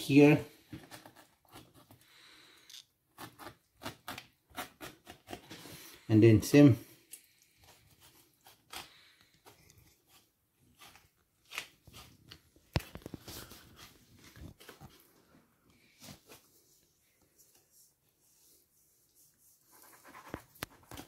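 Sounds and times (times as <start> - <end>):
knife scraping and crunching fish bones: 7.1 - 13.9.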